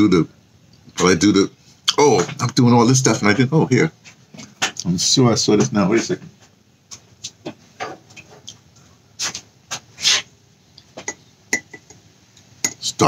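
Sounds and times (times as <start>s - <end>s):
rustling scrapes: 9.2s - 10.3s.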